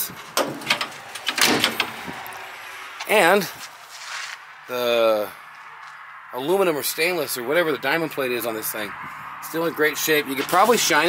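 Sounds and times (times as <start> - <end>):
metal compartment door shutting: 0.2 - 2.2
latch clicks and clatter: 0.2 - 2.3.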